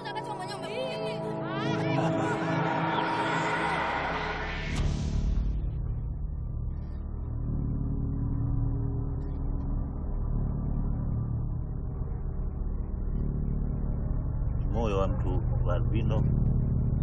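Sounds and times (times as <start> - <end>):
low droning rumble: 4.7 - 17.0.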